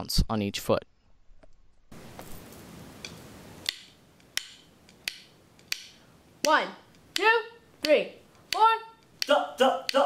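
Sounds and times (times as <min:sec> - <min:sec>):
soft room hiss: 0:00.7 - 0:10.0
metronome clicking: 0:03.0 - 0:10.0.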